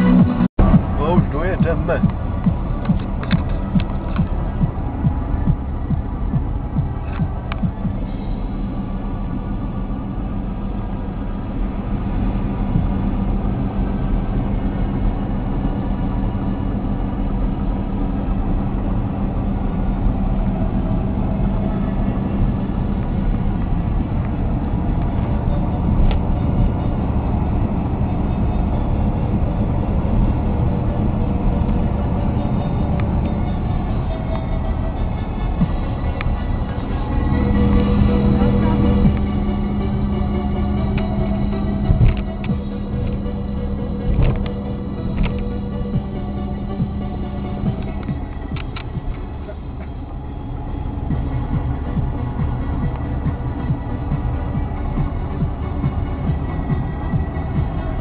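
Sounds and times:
car engine drone: 0.0s - 58.0s
road noise: 0.0s - 58.0s.

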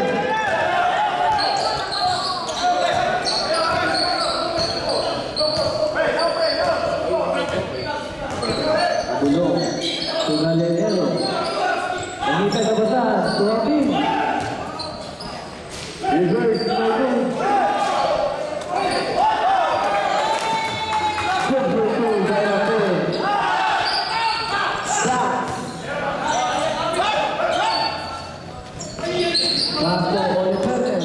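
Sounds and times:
voices shouting: 0.1s - 9.1s, 11.0s - 15.0s, 16.0s - 21.6s, 22.2s - 30.2s
ball bouncing on court: 13.8s - 14.8s, 28.8s - 31.0s.

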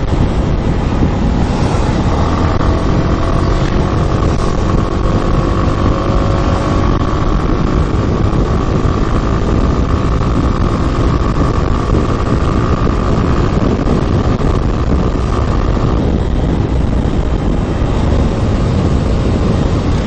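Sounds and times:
motorcycle engine and road noise: 0.0s - 20.0s
steady whine: 0.0s - 20.0s
wind rush on microphone: 0.0s - 20.0s.

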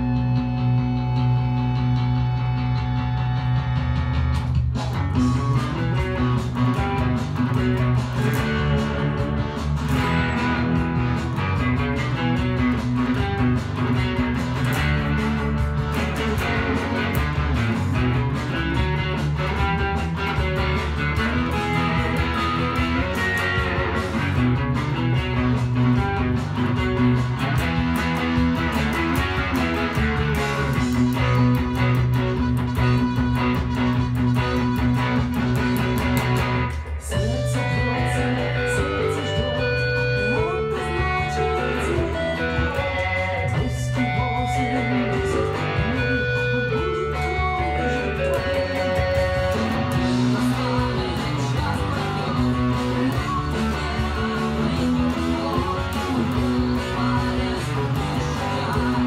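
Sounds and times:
electric guitar playing chords: 0.0s - 59.0s.

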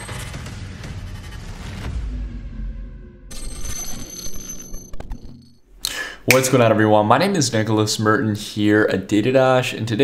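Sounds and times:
deep bass hit: 0.1s - 3.3s
bright bell-like ringing: 3.3s - 5.6s.

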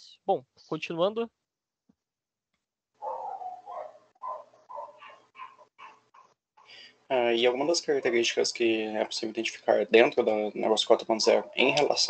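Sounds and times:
dog barking faintly: 3.0s - 6.0s, 11.1s - 12.0s.

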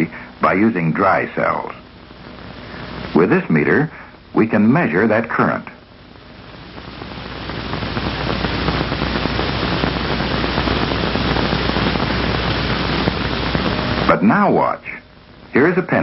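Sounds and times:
film soundtrack hiss: 0.0s - 16.0s
low hum: 5.7s - 14.3s.

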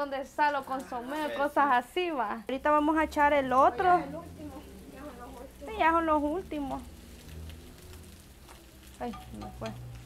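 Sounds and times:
fish frying in hot oil: 1.8s - 10.0s.

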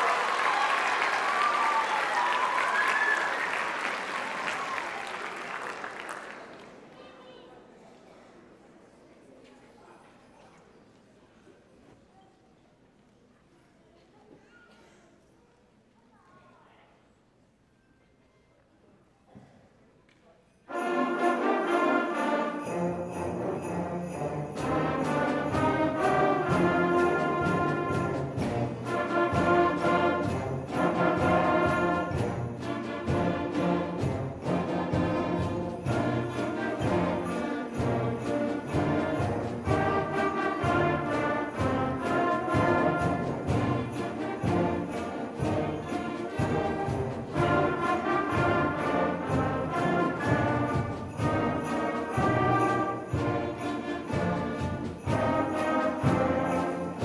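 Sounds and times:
concert band playing rumba tune: 20.8s - 57.0s.

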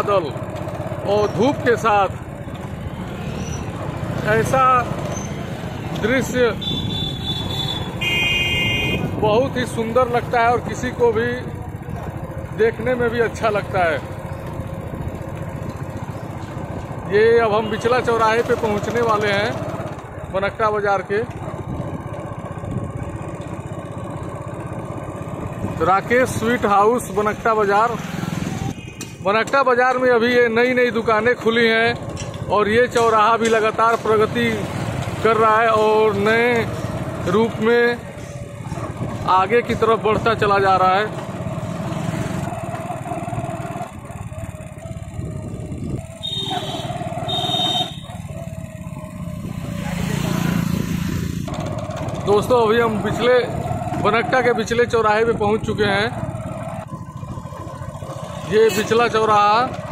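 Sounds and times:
motorcycle engine running: 0.0s - 59.9s
road noise: 0.0s - 59.9s.

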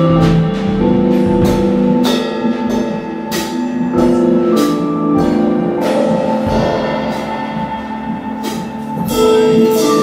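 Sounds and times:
live band playing held chords: 0.0s - 10.0s
cymbal crashes: 5.8s - 9.4s.

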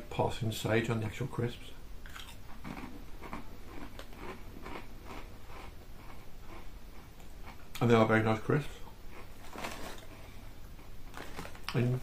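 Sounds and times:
person crunching crisps: 2.0s - 6.6s, 9.1s - 10.3s, 11.0s - 12.0s.

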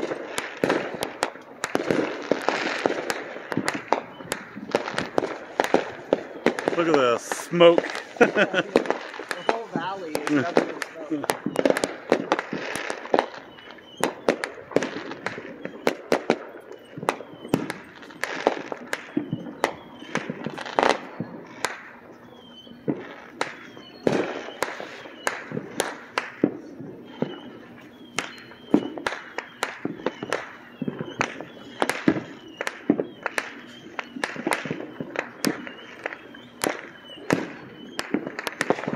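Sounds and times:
fireworks bangs and pops: 0.0s - 38.9s.

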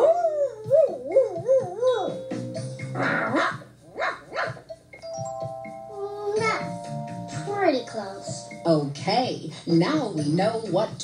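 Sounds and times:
dog barking through tv speaker: 3.0s - 4.6s.

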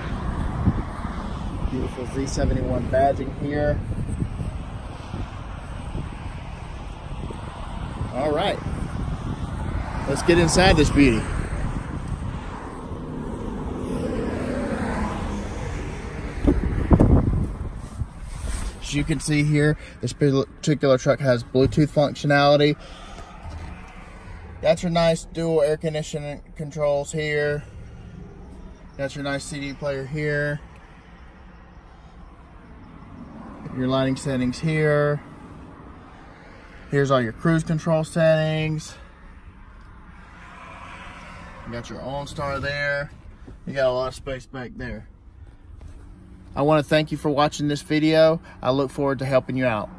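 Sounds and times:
wind rumble on microphone: 0.0s - 19.5s
vehicle passing on road: 0.0s - 49.9s.

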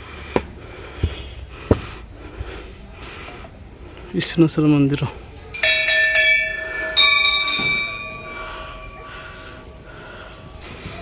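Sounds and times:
temple bells ringing: 5.5s - 10.5s.

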